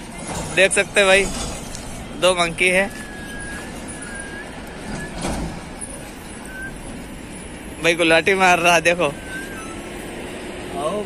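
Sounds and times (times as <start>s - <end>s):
highway traffic noise: 0.0s - 11.0s.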